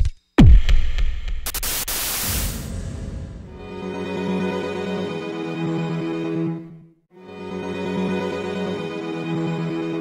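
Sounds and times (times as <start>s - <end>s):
static-like hiss: 1.5s - 2.6s
low rumble: 2.2s - 4.0s.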